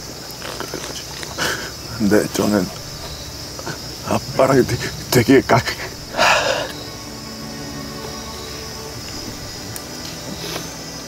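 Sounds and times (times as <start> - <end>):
night insects chirring: 0.0 - 11.0
people sniffling: 0.7 - 1.8, 6.1 - 6.7.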